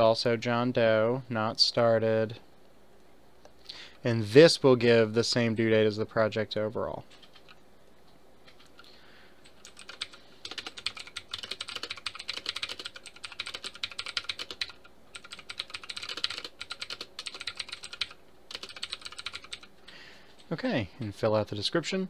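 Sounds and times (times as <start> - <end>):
typing on a keyboard: 7.1 - 7.6, 9.5 - 19.7.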